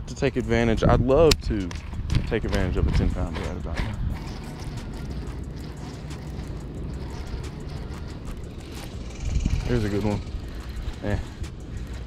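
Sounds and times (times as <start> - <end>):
fishing reel whirring: 0.0 - 12.0.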